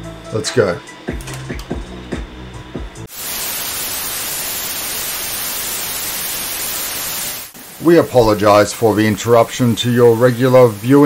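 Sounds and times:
background music: 0:00.0 - 0:03.1
television static hiss: 0:03.1 - 0:11.0.

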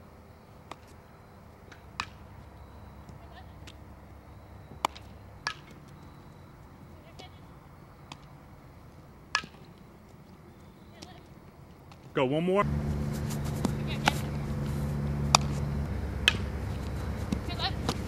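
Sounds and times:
low outdoor background noise: 0:00.0 - 0:18.0
softball hit and caught in gloves: 0:01.7 - 0:02.3, 0:04.8 - 0:05.8, 0:13.0 - 0:18.0.

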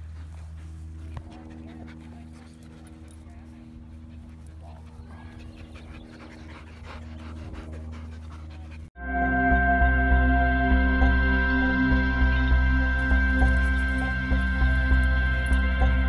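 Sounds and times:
dog panting: 0:00.0 - 0:08.9
steady low hum: 0:00.0 - 0:16.0
faint voices: 0:00.6 - 0:08.9.

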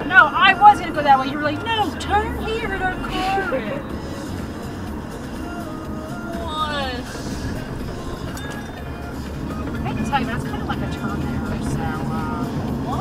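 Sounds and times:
low rumble of engine and road: 0:00.0 - 0:13.0
music from car radio: 0:00.0 - 0:13.0.

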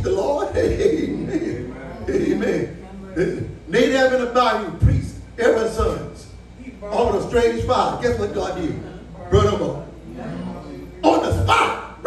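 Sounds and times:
man preaching: 0:00.0 - 0:06.3, 0:06.9 - 0:09.8, 0:11.0 - 0:12.0
man shouting exclamation: 0:11.1 - 0:12.0.

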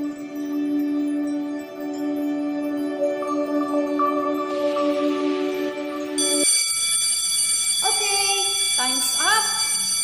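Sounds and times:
soft background music: 0:00.0 - 0:06.4
timer alarm tone: 0:01.2 - 0:10.0.

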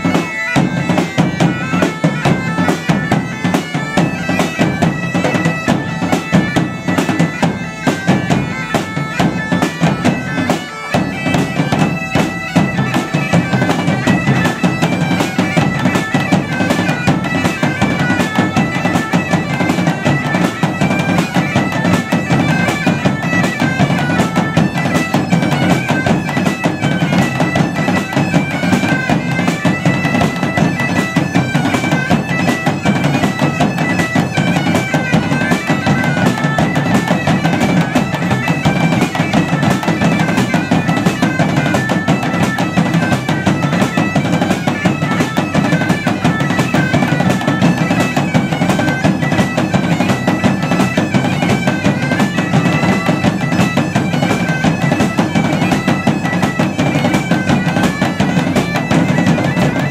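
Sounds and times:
bagpipes playing lively tune: 0:00.0 - 0:59.9
large drum beating: 0:00.0 - 0:59.9.

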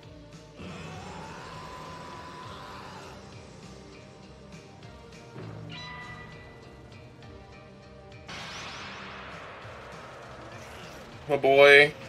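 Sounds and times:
soundtrack music: 0:00.0 - 0:12.0
noisy crash sound effect: 0:08.3 - 0:10.5.

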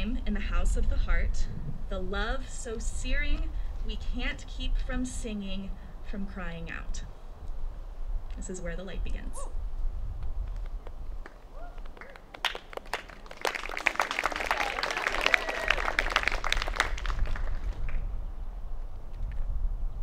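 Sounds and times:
low outdoor rumble: 0:00.0 - 0:20.0
audience applause: 0:12.0 - 0:18.0.

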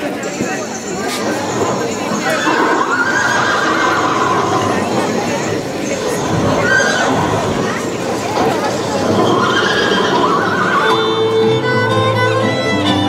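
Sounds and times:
horse neighing: 0:02.0 - 0:11.4
violin music: 0:06.6 - 0:13.0.

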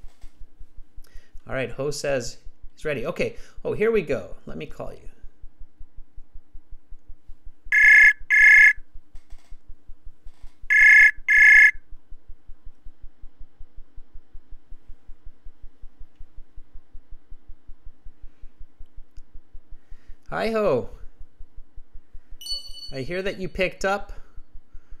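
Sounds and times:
faint rapid low pulsing: 0:00.0 - 0:22.4
ringback tone beeps: 0:07.7 - 0:08.8, 0:10.7 - 0:11.8, 0:22.4 - 0:23.1.

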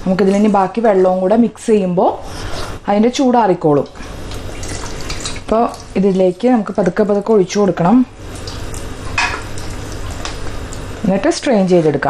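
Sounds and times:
steady low hum: 0:00.0 - 0:12.0
squishing: 0:03.8 - 0:11.0.

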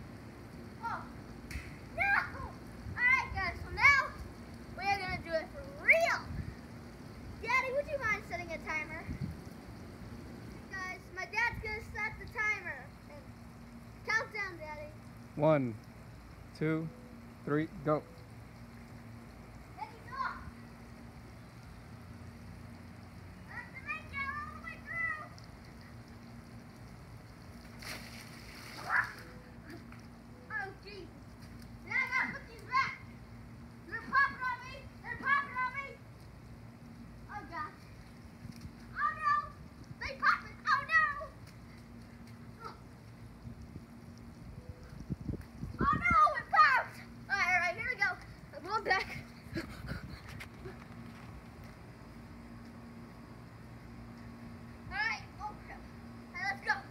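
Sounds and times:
child shouting and squealing: 0:02.0 - 0:04.1, 0:28.8 - 0:29.4, 0:31.9 - 0:33.0, 0:33.9 - 0:36.0, 0:39.0 - 0:41.4, 0:45.8 - 0:49.0.

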